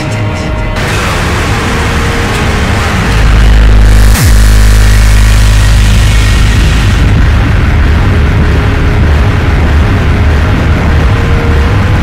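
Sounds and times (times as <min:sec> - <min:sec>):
noisy speedcore electronic music: 0:00.0 - 0:12.0
very loud deep bass: 0:00.8 - 0:12.0.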